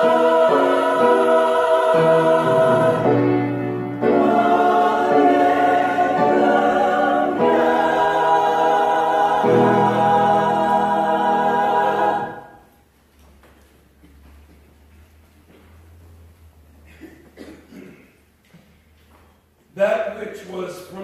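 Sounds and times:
church choir singing: 0.0 - 12.8.

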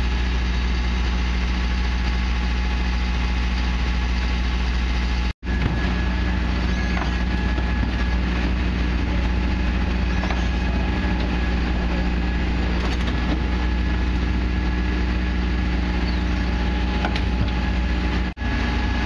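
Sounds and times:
diesel engine idling: 0.0 - 19.0.

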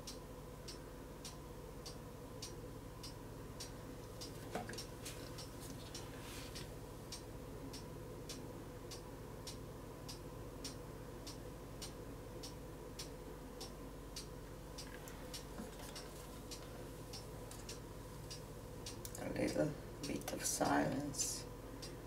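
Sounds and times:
faint steady hum: 0.0 - 22.0
soft ticking: 0.0 - 22.0.

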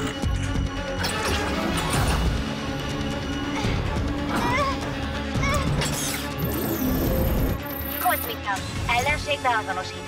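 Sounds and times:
wavering electronic tones: 6.4 - 8.4.

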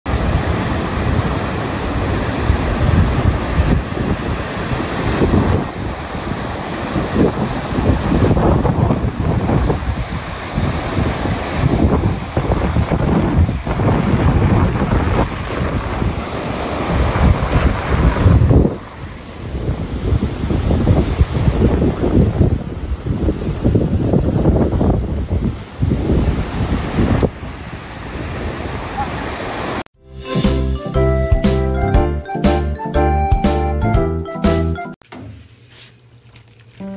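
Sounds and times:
surf breaking on rocky shore: 0.1 - 29.8
wind buffeting microphone: 0.1 - 29.8.

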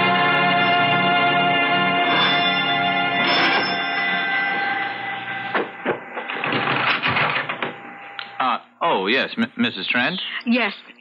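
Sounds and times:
organ chord: 0.0 - 8.1.

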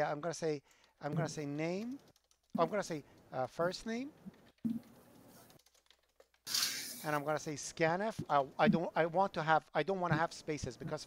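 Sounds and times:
keyboard typing: 0.8 - 3.0, 4.1 - 6.5.

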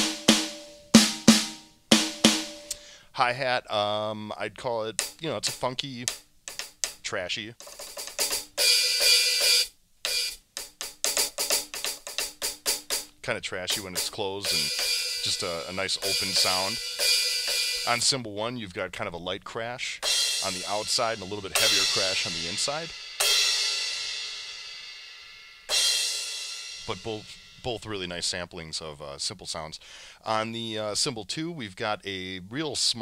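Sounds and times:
closed hi-hat strokes: 0.0 - 2.9, 4.9 - 18.2, 20.0 - 28.4
open hi-hat: 0.0 - 2.9, 4.9 - 18.2, 20.0 - 28.7
crash cymbal ringing: 14.5 - 17.9, 20.6 - 27.7.

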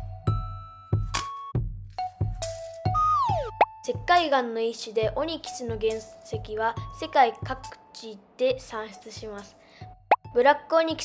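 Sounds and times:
light children's music: 0.0 - 11.0.

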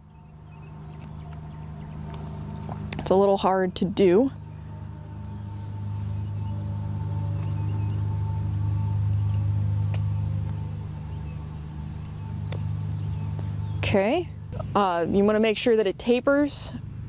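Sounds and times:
low motor hum with whine: 0.0 - 17.0.

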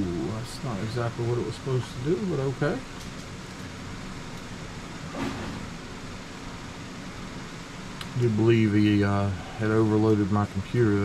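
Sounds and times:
room hum and hiss: 0.0 - 11.0.

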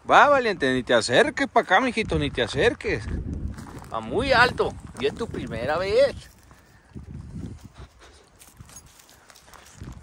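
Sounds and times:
footsteps on dirt: 0.2 - 10.0.

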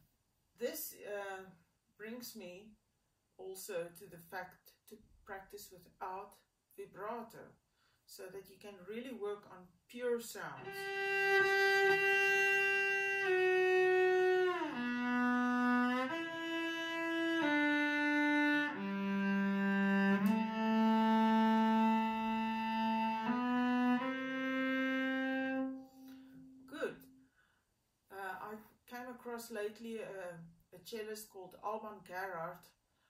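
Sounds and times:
cello playing long notes: 10.6 - 26.7.

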